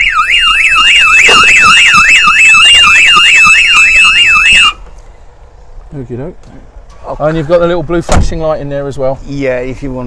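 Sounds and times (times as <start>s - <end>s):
van alarm siren: 0.0s - 4.9s.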